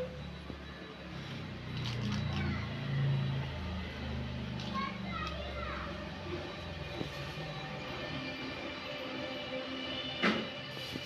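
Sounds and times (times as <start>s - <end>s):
indistinct voices with children: 4.4s - 7.9s.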